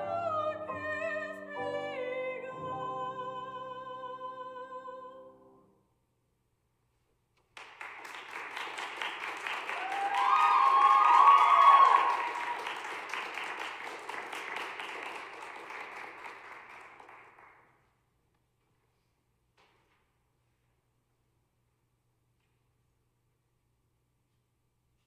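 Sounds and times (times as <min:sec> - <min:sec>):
voices rising above applause: 0:07.6 - 0:17.6
audience applauding: 0:07.6 - 0:17.8.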